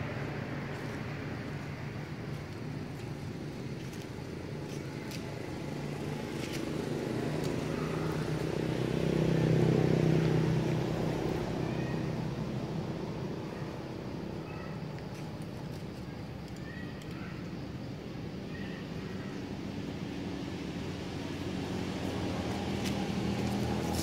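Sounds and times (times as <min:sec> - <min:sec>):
vehicle engine passing: 0:05.2 - 0:13.2, 0:20.1 - 0:24.0.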